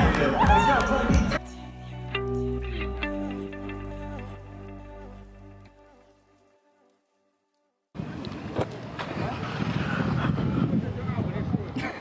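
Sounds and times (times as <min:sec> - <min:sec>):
wind rumbling on microphone: 0:08.0 - 0:12.0.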